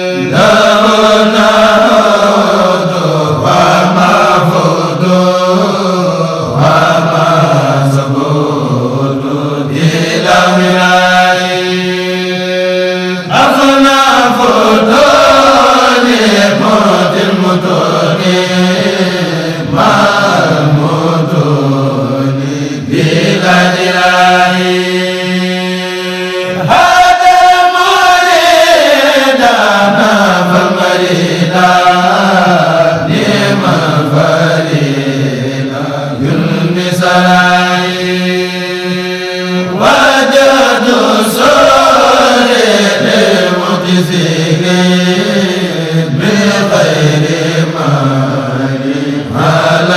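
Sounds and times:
voices chanting: 0:00.0 - 0:49.9.

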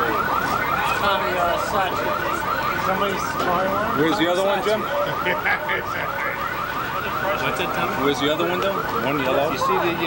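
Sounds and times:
car alarms chirping: 0:00.0 - 0:10.0.

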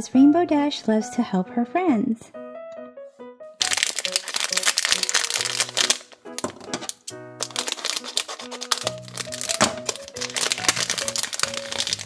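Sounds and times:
soft background tune: 0:00.0 - 0:12.0
foil bag crinkling: 0:03.6 - 0:12.0.

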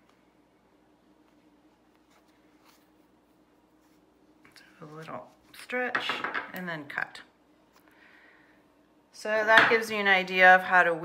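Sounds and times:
faint steady hum: 0:00.0 - 0:11.0
yarn rustling through fabric: 0:01.1 - 0:05.7.

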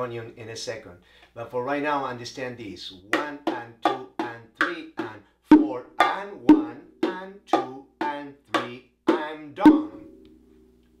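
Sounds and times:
bongos played by hand: 0:03.1 - 0:10.2.

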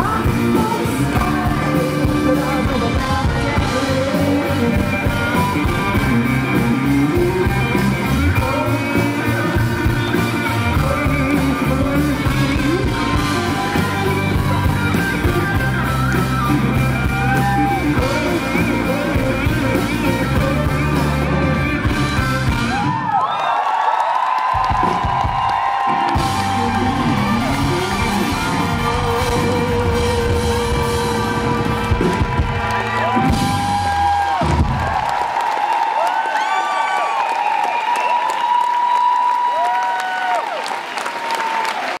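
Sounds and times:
live rock band playing: 0:00.0 - 0:23.2, 0:24.4 - 0:35.3
audience whooping: 0:12.1 - 0:19.1, 0:22.4 - 0:42.0.

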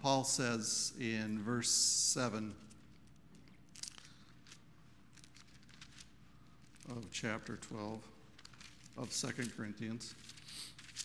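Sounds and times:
paper pages rustling: 0:02.6 - 0:11.0.

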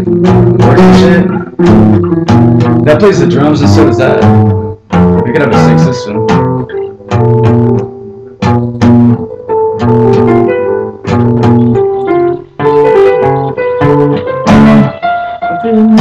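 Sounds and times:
guitar chords strummed: 0:00.0 - 0:16.0.

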